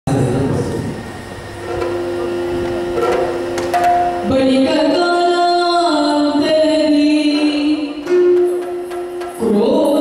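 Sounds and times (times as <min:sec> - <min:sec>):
drone instrument: 0:00.1 - 0:10.0.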